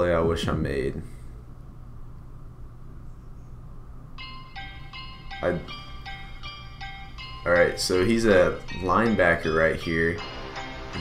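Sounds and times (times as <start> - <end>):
low steady hum: 0.0 - 11.0
bell-like chime music: 4.2 - 11.0.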